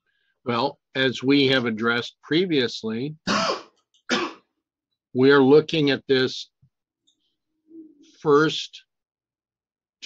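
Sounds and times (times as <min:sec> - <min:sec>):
man clearing his throat: 0:03.3 - 0:04.5.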